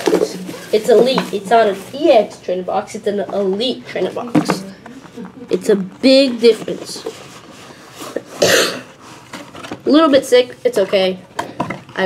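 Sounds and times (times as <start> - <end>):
man coughing: 8.4 - 8.9.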